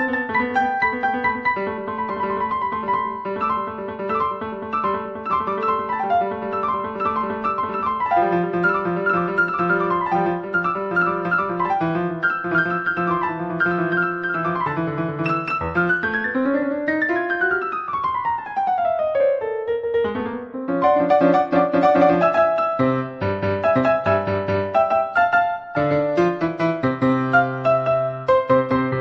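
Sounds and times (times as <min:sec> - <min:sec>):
solo classical piano: 0:00.0 - 0:29.0.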